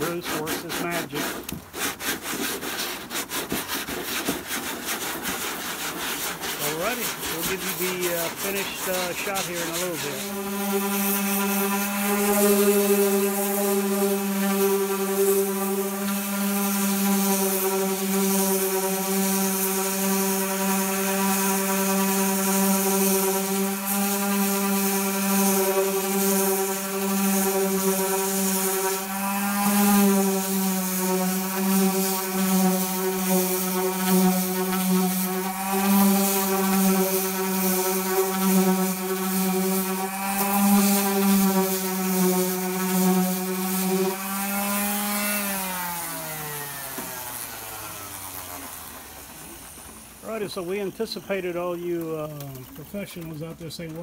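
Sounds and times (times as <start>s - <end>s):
orbital sander running: 0.0s - 54.0s
sander spinning down: 0.0s - 54.0s.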